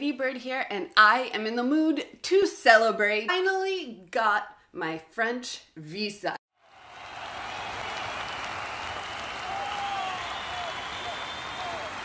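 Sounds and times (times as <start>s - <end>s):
crowd applause: 6.6s - 12.0s.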